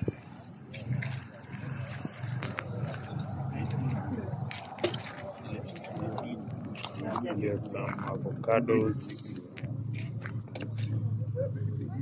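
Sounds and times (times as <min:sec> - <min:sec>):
indistinct talking of bystanders: 0:00.0 - 0:12.0.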